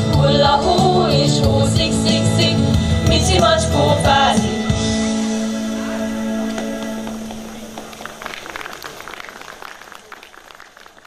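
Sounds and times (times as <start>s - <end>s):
audience applauding: 6.4s - 11.0s.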